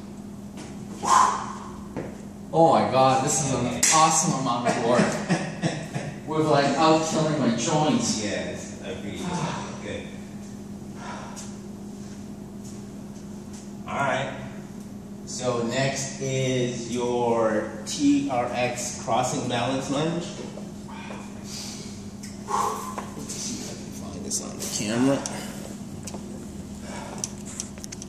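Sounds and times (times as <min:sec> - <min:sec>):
low room hum: 0:00.0 - 0:28.0
man grunting with effort: 0:09.2 - 0:09.8
man speaking: 0:23.3 - 0:25.5.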